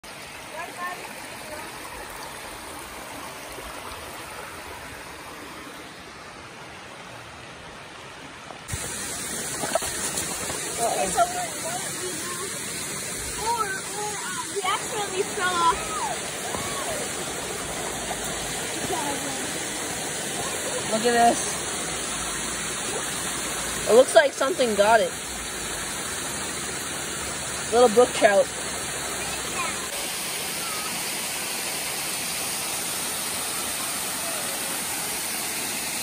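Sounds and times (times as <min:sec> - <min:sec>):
brook running over stones: 0:00.0 - 0:36.0.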